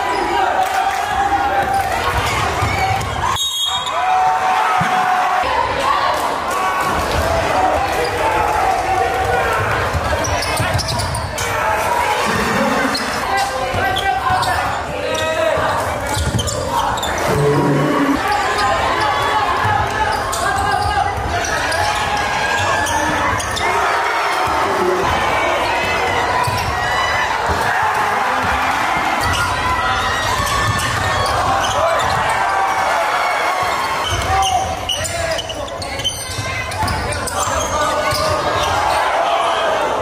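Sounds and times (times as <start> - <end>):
spectators' voices echoing: 0.0 - 40.0.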